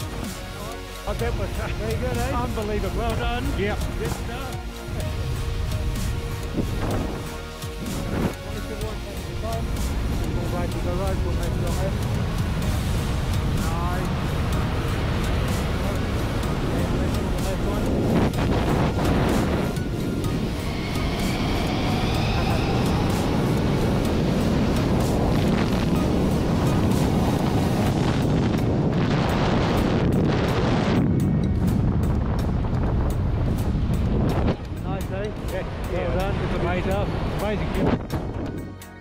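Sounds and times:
wind rushing over microphone: 0:00.0 - 0:38.8
background music: 0:00.0 - 0:39.0.

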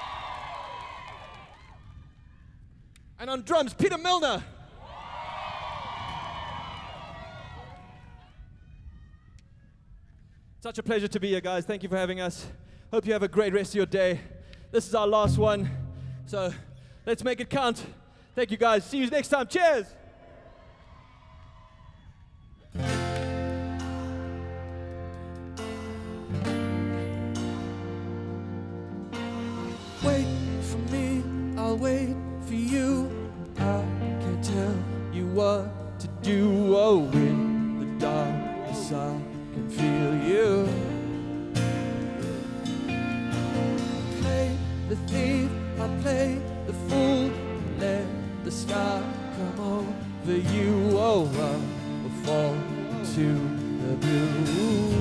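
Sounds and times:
electric guitar: 0:22.8 - 0:55.0
bass and drums: 0:29.0 - 0:36.5, 0:54.0 - 0:55.0.

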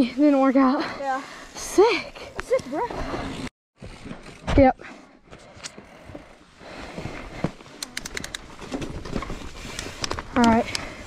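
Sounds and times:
mountain bike rolling on dirt: 0:00.1 - 0:11.0
sharp clicks: 0:07.8 - 0:08.4.

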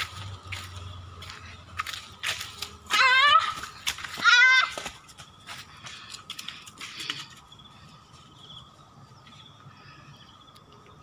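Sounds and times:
footsteps crunching dry leaves: 0:00.0 - 0:08.0.

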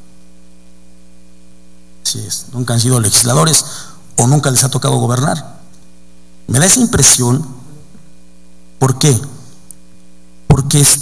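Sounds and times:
electrical mains hum with hiss: 0:00.0 - 0:11.0.

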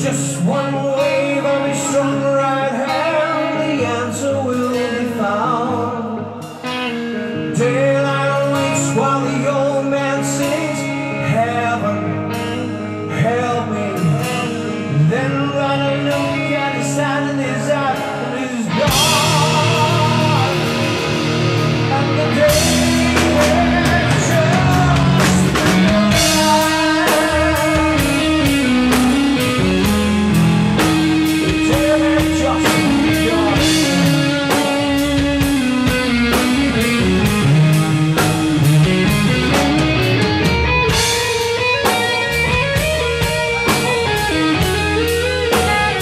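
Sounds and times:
bass guitar: 0:00.0 - 0:46.0
electric guitar chords: 0:00.0 - 0:46.0
man singing: 0:00.0 - 0:46.0
drum kit steady beat: 0:18.7 - 0:46.0.

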